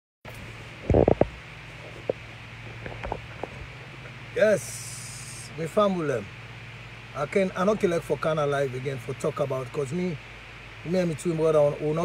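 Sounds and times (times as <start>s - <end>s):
steady low hum: 0.3s - 12.0s.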